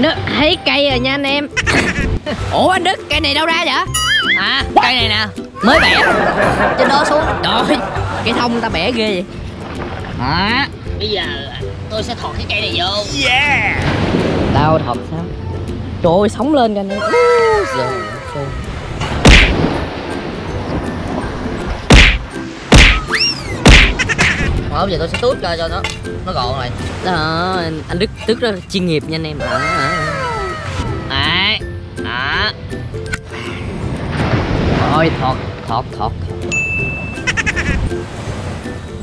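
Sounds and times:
background music: 0:00.0 - 0:39.0
person crying out: 0:05.6 - 0:06.2, 0:16.9 - 0:18.6, 0:29.4 - 0:30.9
shovel whacking into sand: 0:19.2 - 0:19.8, 0:21.9 - 0:24.4.

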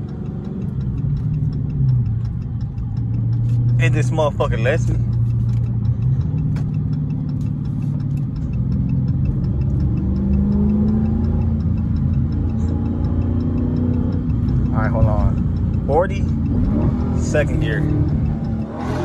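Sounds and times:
car engine droning in cabin: 0:00.0 - 0:19.0.

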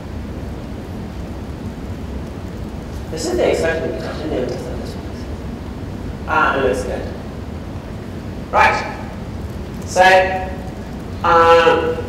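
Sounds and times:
hall room noise rumble and hiss: 0:00.0 - 0:12.0.

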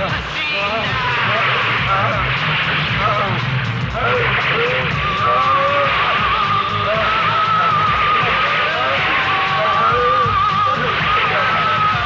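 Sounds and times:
person singing over music: 0:00.0 - 0:12.0.

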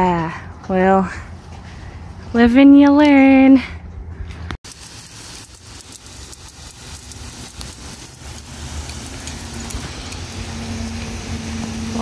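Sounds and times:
garden hose spraying water: 0:04.6 - 0:12.0.

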